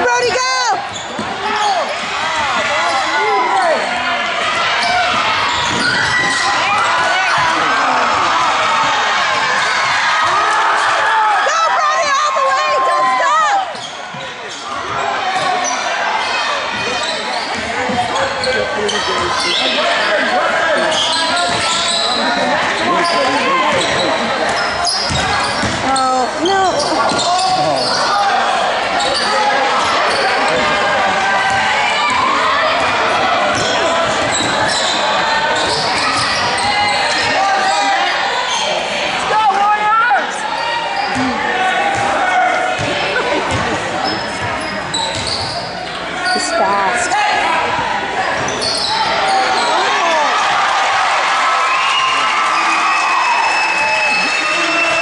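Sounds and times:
chatter and calls of people: 0:00.0 - 0:55.0.

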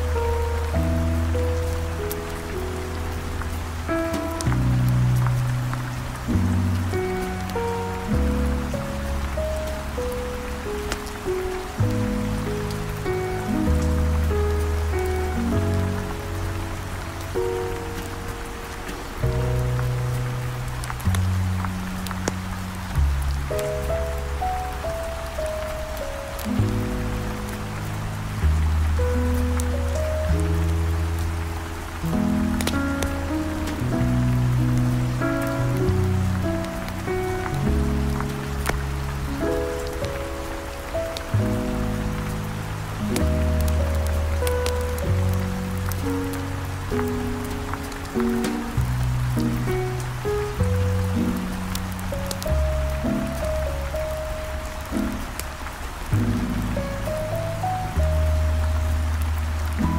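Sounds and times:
heavy rain: 0:00.0 - 0:59.9
wood fire crackling: 0:00.0 - 0:59.9.

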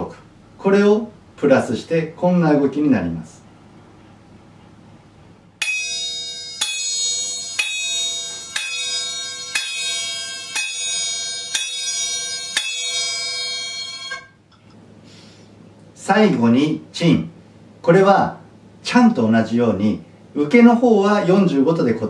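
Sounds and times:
hand cymbals clashing: 0:05.6 - 0:14.4.

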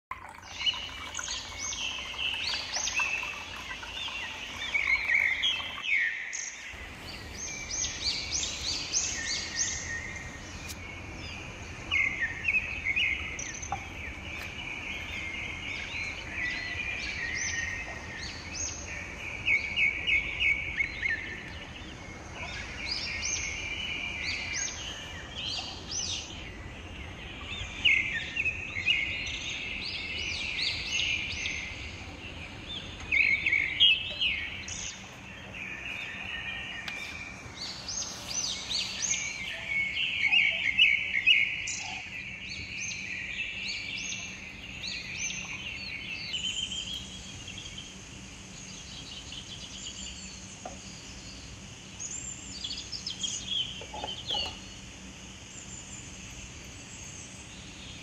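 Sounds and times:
songbirds chirping and singing: 0:00.1 - 0:58.0.

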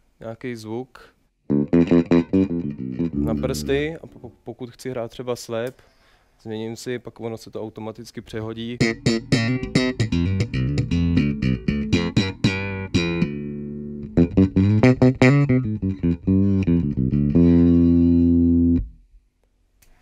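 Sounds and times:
electric bass guitar: 0:01.5 - 0:04.3, 0:08.8 - 0:19.1.

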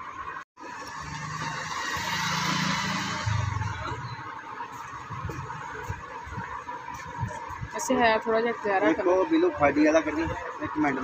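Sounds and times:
motor vehicle passing: 0:00.6 - 0:07.3.

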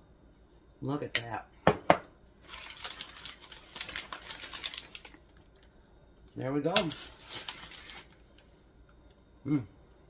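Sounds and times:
parchment paper crinkling: 0:02.4 - 0:05.7, 0:06.5 - 0:08.5.

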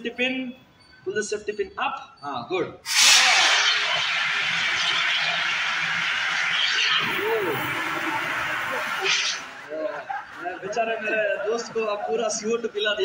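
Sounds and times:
fire extinguisher rushing hiss: 0:02.9 - 0:09.5.

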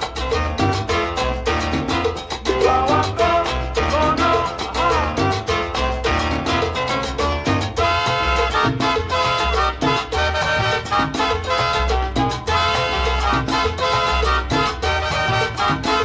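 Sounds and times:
instrumental salsa music: 0:00.0 - 0:16.0.

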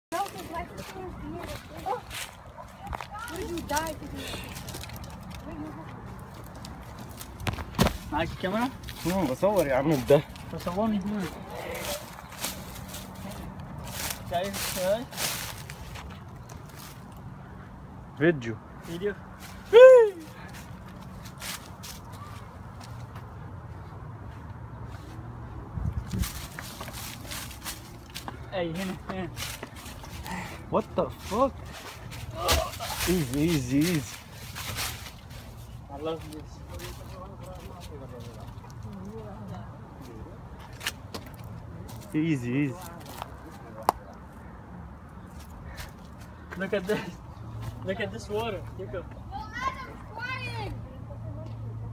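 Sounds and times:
footsteps crunching dry leaves: 0:00.1 - 0:17.2, 0:18.8 - 0:39.4.

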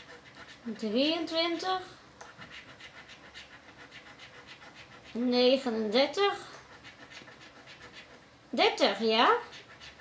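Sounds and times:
person speaking: 0:00.6 - 0:02.0
lottery ticket being scratched: 0:02.3 - 0:05.3, 0:06.6 - 0:08.2.

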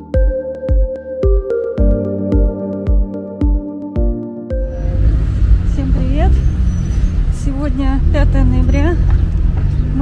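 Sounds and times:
street traffic rumble: 0:04.5 - 0:10.0
woman's voice: 0:05.7 - 0:06.4, 0:07.4 - 0:09.1.

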